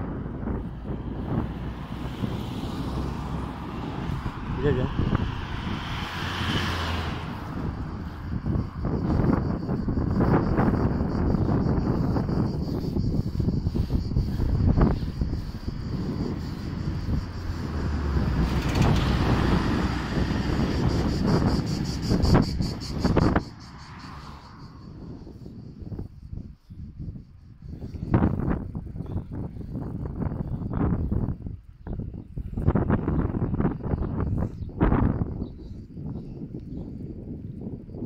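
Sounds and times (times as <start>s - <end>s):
wind buffeting microphone: 0.0s - 38.0s.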